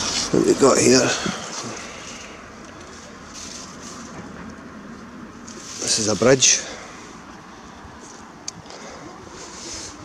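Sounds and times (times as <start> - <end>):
faint street background hiss: 0.0 - 10.0.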